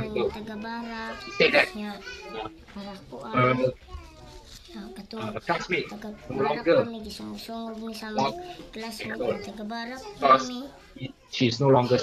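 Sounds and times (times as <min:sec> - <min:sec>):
girl speaking: 0:00.0 - 0:11.0.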